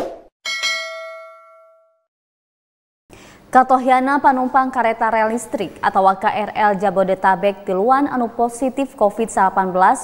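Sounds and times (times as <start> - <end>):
bright bell ding: 0.5 - 2.1.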